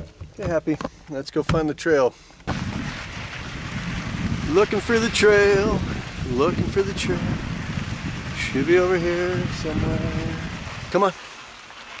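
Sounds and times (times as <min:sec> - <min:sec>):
bike riding noise on dirt: 0:02.4 - 0:12.0
wind buffeting microphone: 0:02.5 - 0:11.0.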